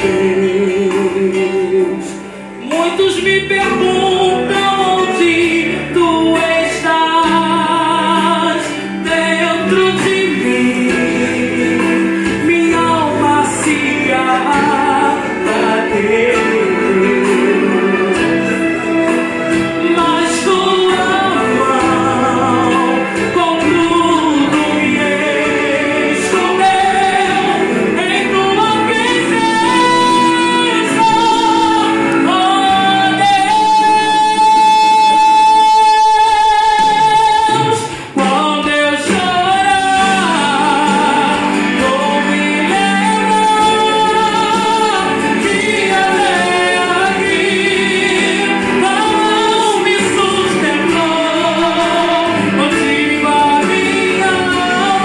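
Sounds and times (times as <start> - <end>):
woman singing into a microphone: 0.0 - 18.5, 19.8 - 55.0
instrumental accompaniment: 0.0 - 55.0.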